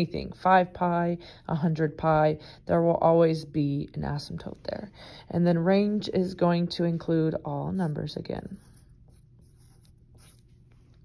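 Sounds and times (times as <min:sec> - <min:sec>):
pencil scratching on paper: 0:07.7 - 0:11.0.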